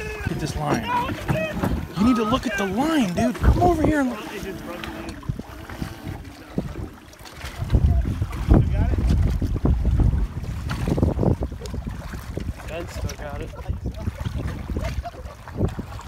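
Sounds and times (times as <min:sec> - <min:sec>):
choppy water: 0:00.0 - 0:16.0
wind buffeting microphone: 0:00.0 - 0:16.0.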